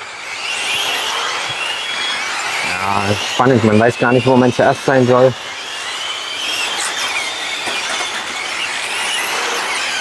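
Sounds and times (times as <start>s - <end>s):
electric rc car motors whining: 0.0s - 10.0s.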